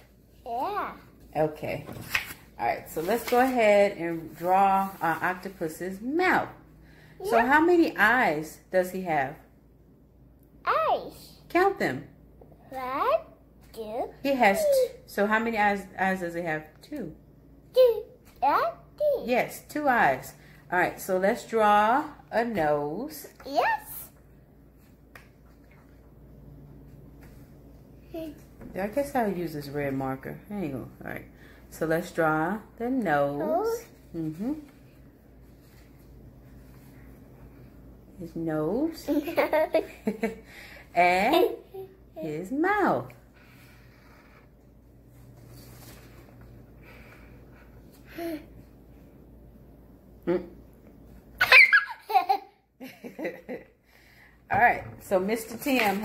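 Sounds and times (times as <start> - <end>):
low steady hum: 0.0 - 56.0
young child laughing: 51.4 - 52.6.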